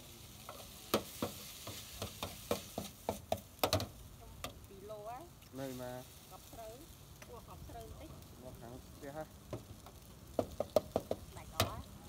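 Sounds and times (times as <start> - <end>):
steady sizzle: 0.0 - 12.0
metal spatula scraping wok: 0.2 - 4.6.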